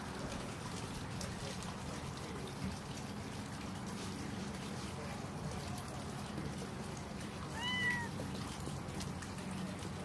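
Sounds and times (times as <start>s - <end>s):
cat meowing: 7.5s - 8.2s.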